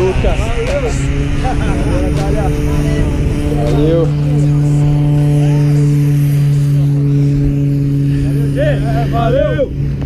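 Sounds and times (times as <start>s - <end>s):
propeller aircraft engine humming: 0.0s - 10.0s
wind buffeting microphone: 0.0s - 10.0s.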